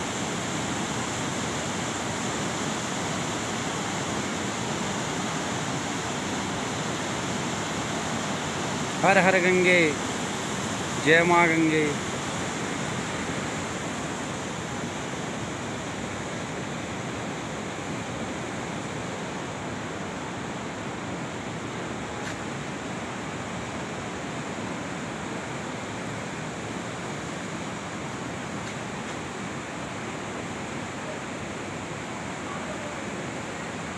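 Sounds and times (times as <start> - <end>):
river rushing over boulders: 0.0 - 33.9.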